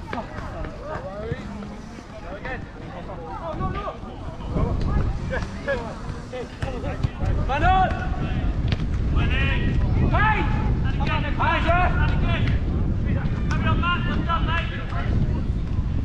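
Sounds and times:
wind noise on microphone: 0:00.0 - 0:16.0.

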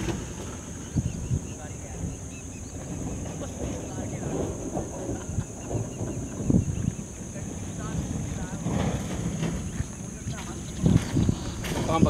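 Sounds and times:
wind buffeting microphone: 0:00.0 - 0:12.0
faint bird chirps: 0:00.5 - 0:04.3, 0:05.3 - 0:07.9.

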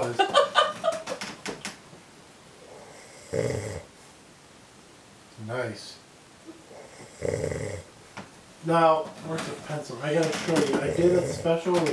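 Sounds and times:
man snoring: 0:02.6 - 0:03.9, 0:06.7 - 0:07.9, 0:10.8 - 0:11.7.

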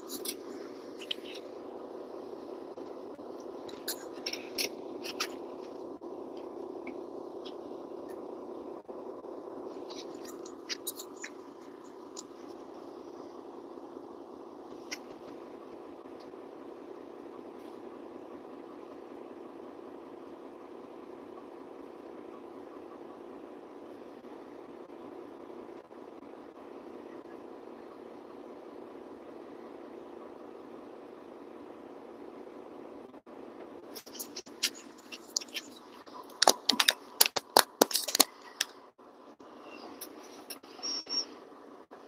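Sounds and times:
mechanical hum: 0:00.0 - 0:42.0.

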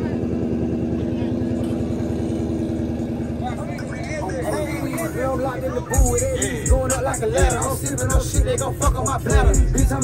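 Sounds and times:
vehicle engine idling: 0:00.0 - 0:10.0
faint voices: 0:03.0 - 0:08.6.

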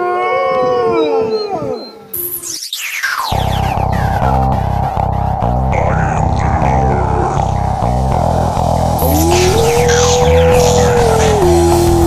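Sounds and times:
wolves howling: 0:00.0 - 0:02.1, 0:09.0 - 0:12.0.

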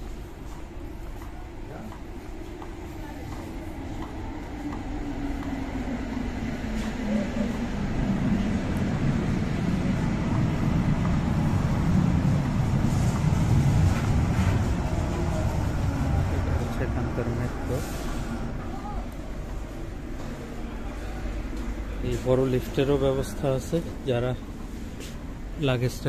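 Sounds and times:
train rumbling through station: 0:00.0 - 0:26.0.

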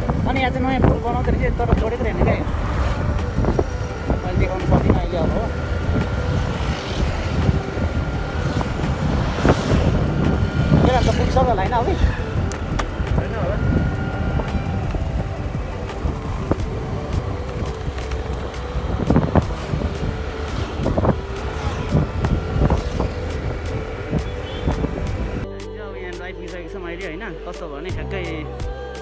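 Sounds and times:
motorbike engine running: 0:00.0 - 0:25.4
wind buffeting microphone: 0:00.0 - 0:25.5
music: 0:00.0 - 0:29.0
road rumble: 0:00.0 - 0:29.0.

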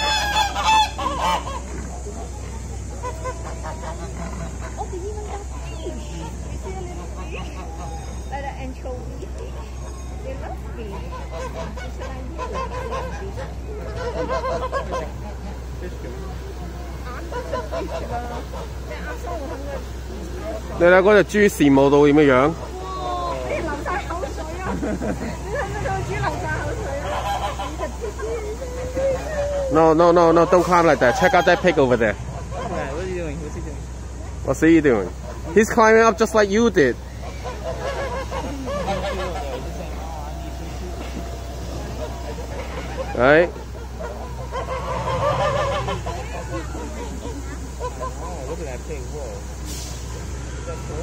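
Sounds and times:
geese honking: 0:00.0 - 0:51.0
indistinct voices: 0:00.0 - 0:51.0
steady low rumble: 0:00.0 - 0:51.0.

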